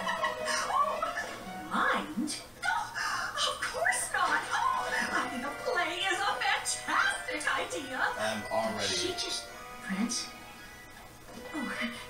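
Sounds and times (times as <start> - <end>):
cartoon background music: 3.6 - 12.0.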